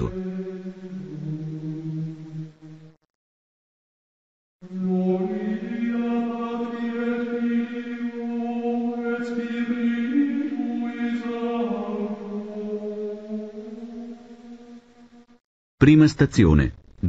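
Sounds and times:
slow chanted singing: 0.0 - 3.0, 4.6 - 15.4.

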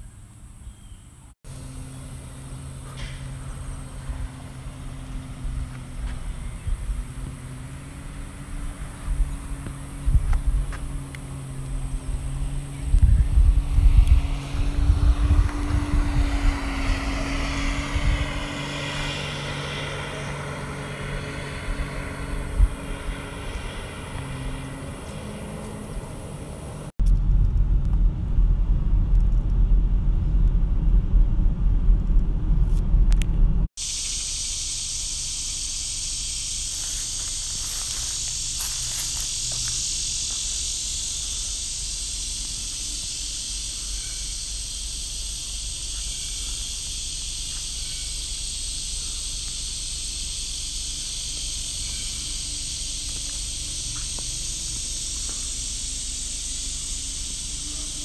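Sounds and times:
low motor hum: 0.0 - 33.7, 34.7 - 58.0
car driving on dirt road: 0.0 - 34.0, 34.6 - 58.0
wind gusts on microphone: 8.6 - 24.5.

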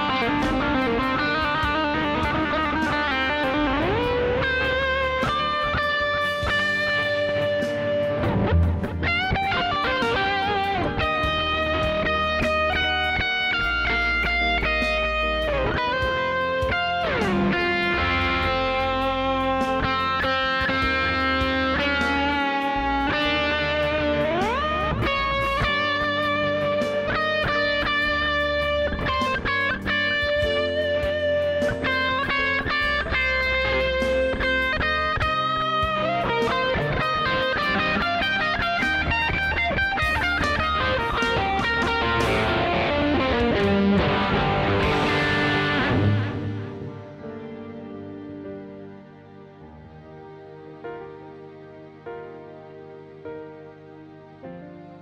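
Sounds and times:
steady low bass: 0.0 - 20.0, 20.7 - 47.6
electric guitar lead line: 0.0 - 55.0.

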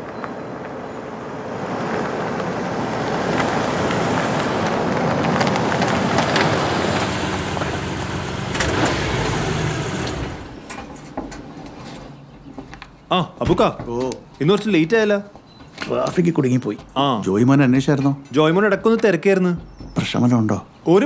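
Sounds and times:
pickup truck driving past: 0.0 - 10.7.

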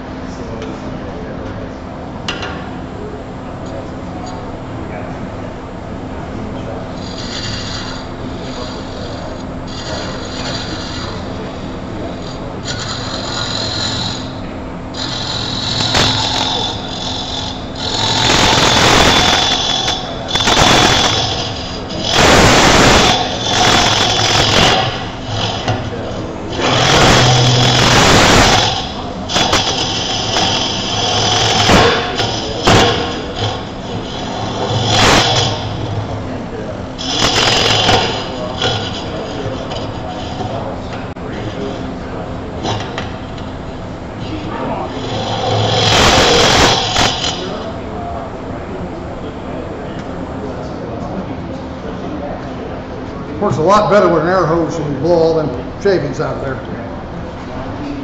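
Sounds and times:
turning tool rasping wood: 7.0 - 36.3, 37.0 - 43.7, 44.9 - 47.7
wood lathe motor hum: 7.0 - 47.8.

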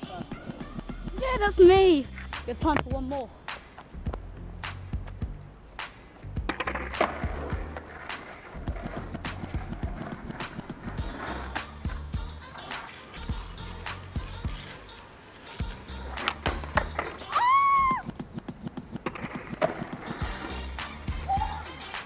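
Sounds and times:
music with bass beat: 0.0 - 7.8, 8.6 - 12.5, 13.2 - 14.8, 15.6 - 22.0
skateboard wheels on wet asphalt: 5.7 - 22.0.

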